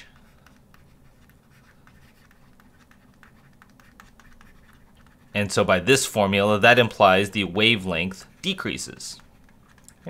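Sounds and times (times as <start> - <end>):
stylus tapping and scratching: 0.0 - 5.6, 6.7 - 10.0.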